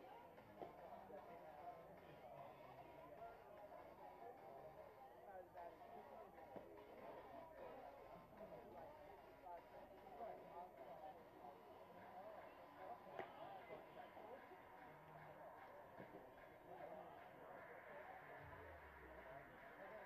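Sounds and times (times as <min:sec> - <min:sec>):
distant indistinct voices: 0:00.0 - 0:20.0.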